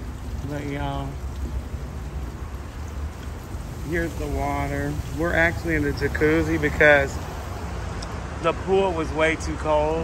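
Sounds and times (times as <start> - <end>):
hot tub jets bubbling water: 0.0 - 10.0.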